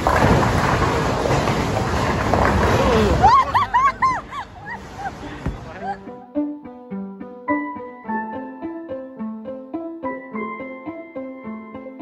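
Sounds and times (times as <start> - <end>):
bowling ball rolling on wooden lane: 0.0 - 5.8.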